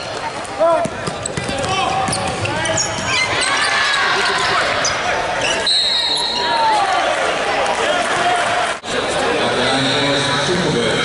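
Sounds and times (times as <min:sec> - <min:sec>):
sneakers squeaking: 0:00.0 - 0:06.6
players' voices: 0:00.0 - 0:11.0
basketball bouncing: 0:00.8 - 0:03.2
referee's whistle: 0:05.5 - 0:06.6.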